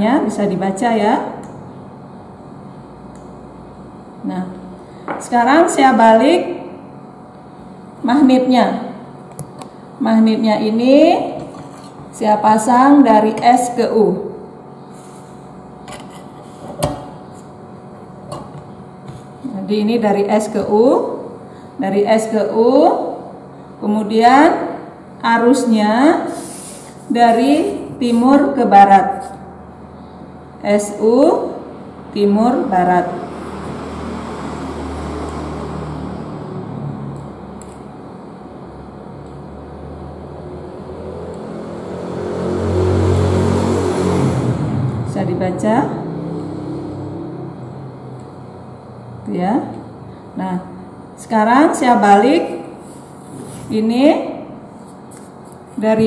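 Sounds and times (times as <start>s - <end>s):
vehicle engine passing: 32.7s - 37.5s, 39.6s - 49.3s.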